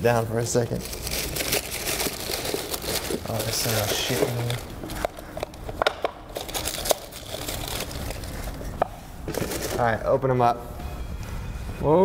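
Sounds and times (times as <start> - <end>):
paper packaging crinkling: 0.5 - 9.9.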